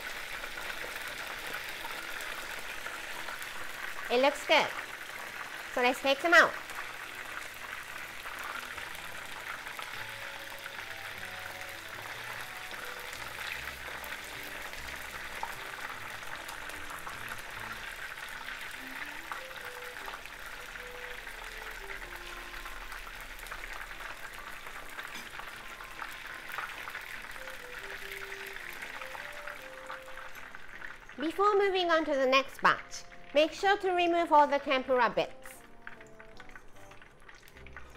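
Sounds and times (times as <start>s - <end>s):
oil sizzling with crackles: 0.0s - 37.9s
soft background melody: 0.0s - 37.9s.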